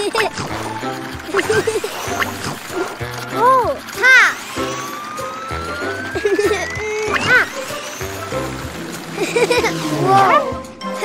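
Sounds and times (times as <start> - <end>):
rising cartoon whistle: 4.6 - 8.6
cartoon boings: 6.3 - 7.8, 9.5 - 10.6.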